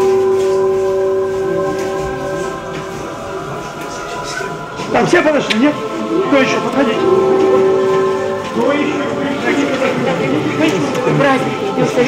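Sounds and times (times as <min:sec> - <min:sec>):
sustained voices: 0:00.0 - 0:12.0
voice holding long steady note: 0:00.0 - 0:12.0.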